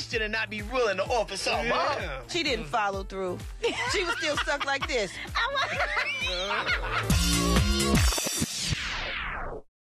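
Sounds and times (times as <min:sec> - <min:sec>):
people laughing: 0:03.6 - 0:07.3.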